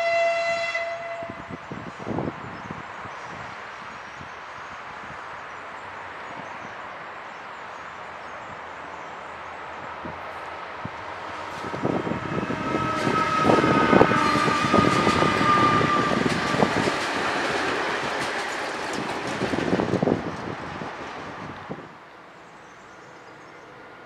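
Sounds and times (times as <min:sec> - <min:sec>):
electric train passing: 0:00.0 - 0:24.0
wheels clicking over rail joints: 0:14.2 - 0:20.6.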